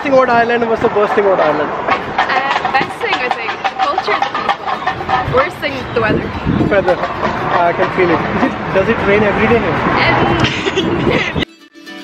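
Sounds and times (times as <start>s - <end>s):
people talking: 0.0s - 11.4s.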